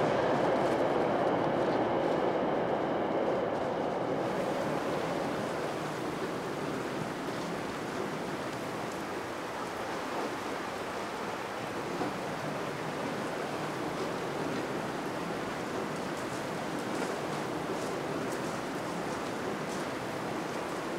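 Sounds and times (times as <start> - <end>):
flowing river rushing: 4.1 - 20.9.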